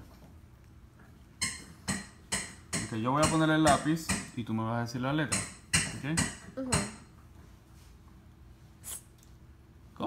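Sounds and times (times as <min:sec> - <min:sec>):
sharp knocks of a hard object: 0:01.4 - 0:04.4, 0:05.2 - 0:07.1.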